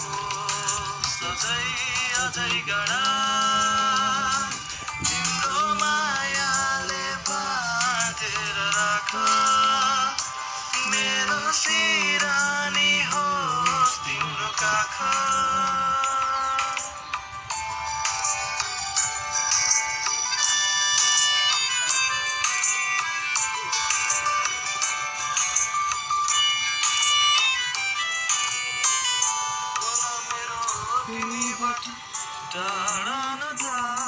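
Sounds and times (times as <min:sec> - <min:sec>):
quick high-note instrumental melody: 0:10.8 - 0:34.0.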